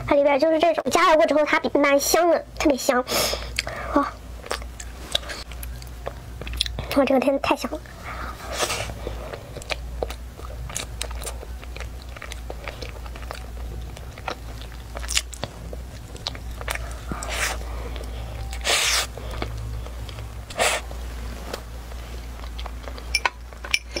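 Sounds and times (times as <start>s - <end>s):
biting and chewing flaky pastry: 4.4s - 6.9s, 7.8s - 23.6s.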